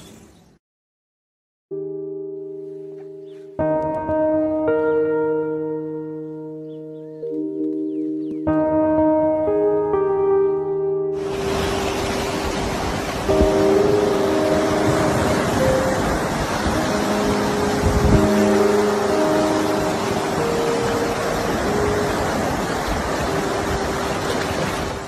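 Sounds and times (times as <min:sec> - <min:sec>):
ocean surf rushing: 0:11.2 - 0:25.0.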